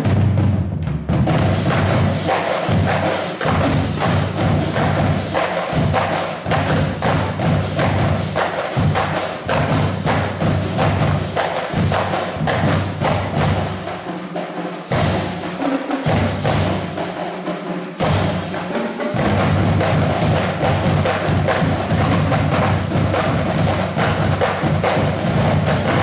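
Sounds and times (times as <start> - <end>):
snare and tenor drums: 0.0 - 26.0
bass drum notes: 19.2 - 26.0.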